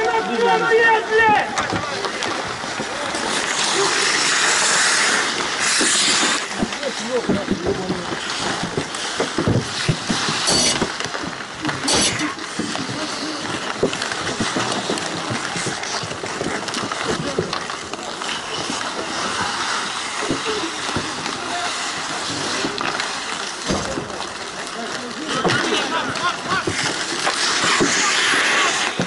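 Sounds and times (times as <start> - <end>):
players shouting: 0.0 - 2.2
knocks of sticks and puck: 0.0 - 29.0
skate blades scraping ice: 0.0 - 29.0.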